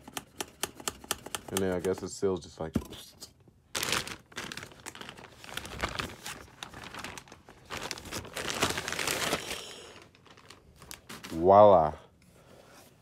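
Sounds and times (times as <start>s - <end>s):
plastic bag crinkling and rustling: 3.7s - 11.8s.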